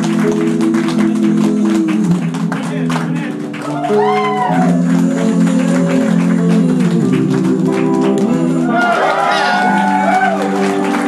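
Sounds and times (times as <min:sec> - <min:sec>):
small live band playing: 0:00.0 - 0:11.0.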